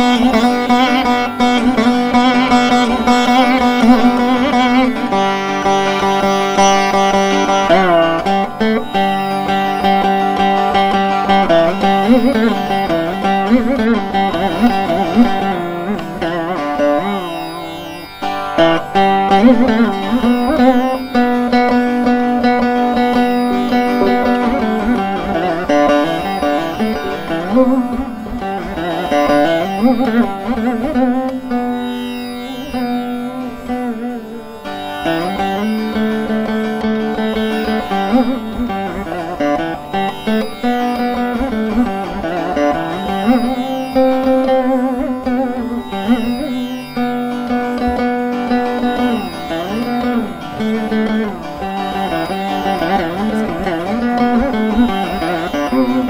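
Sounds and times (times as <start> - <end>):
veena melody with bent notes: 0.0 - 56.0.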